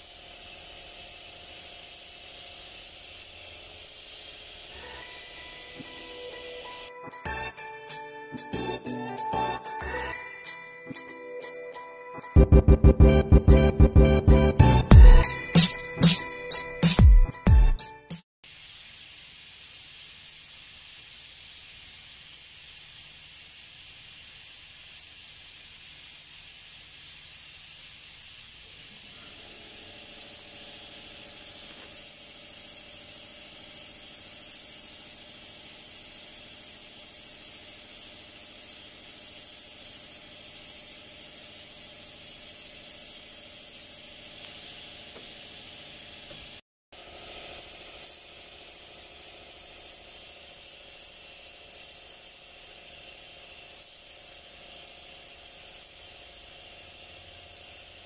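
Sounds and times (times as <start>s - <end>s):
spray gun hissing: 0.0s - 6.9s, 18.4s - 58.0s.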